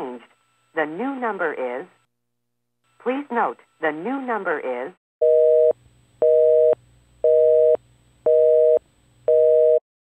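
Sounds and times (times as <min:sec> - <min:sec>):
telephone busy signal: 0:05.2 - 0:09.8.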